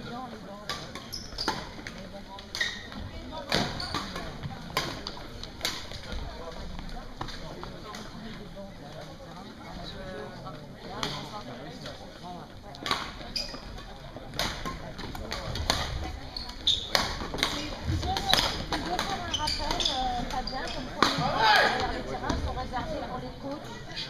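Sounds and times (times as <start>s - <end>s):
murmur of voices: 0.0s - 24.0s
rackets striking shuttlecock: 16.9s - 20.4s.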